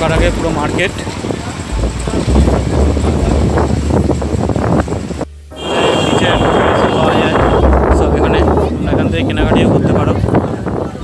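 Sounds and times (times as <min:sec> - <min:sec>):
outdoor market ambience: 0:00.0 - 0:11.0
wind rumbling on microphone: 0:00.0 - 0:11.0.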